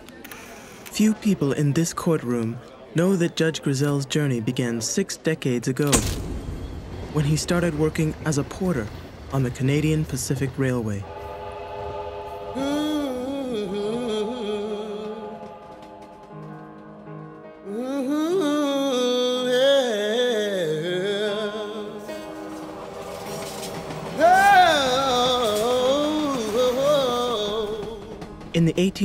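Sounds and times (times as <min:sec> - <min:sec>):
train whistle chord: 0:11.0 - 0:17.0, 0:21.8 - 0:28.1
person singing: 0:12.4 - 0:16.5, 0:17.6 - 0:23.1, 0:23.7 - 0:28.3.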